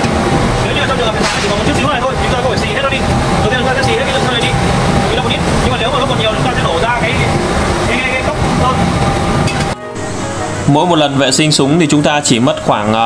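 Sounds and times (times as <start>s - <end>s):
dense machine noise: 0.0s - 13.0s
people talking: 0.5s - 9.8s, 10.7s - 13.0s.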